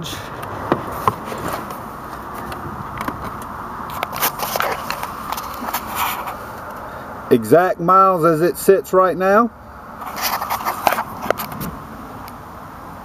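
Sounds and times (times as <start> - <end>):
small clicks rustles and scrapes: 1.0 - 6.8, 10.0 - 11.8.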